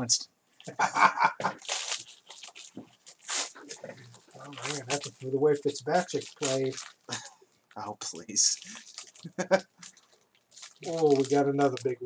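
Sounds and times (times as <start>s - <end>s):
foil wrapper crinkling and tearing: 1.5s - 12.0s.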